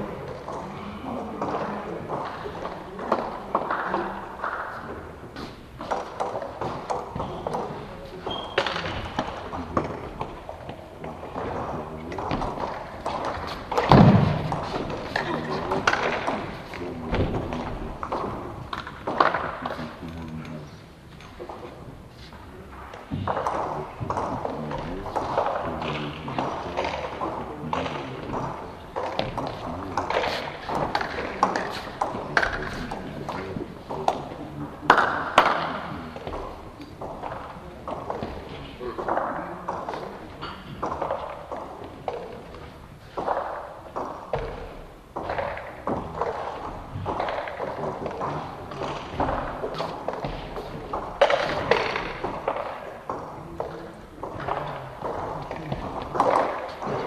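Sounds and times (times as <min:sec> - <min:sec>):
indistinct voices talking: 0:06.6 - 0:42.8.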